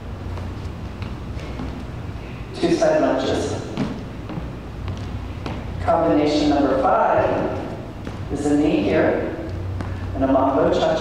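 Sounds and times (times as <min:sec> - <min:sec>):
low steady hum: 0:00.0 - 0:11.0
sneakers thudding on step: 0:03.7 - 0:05.8.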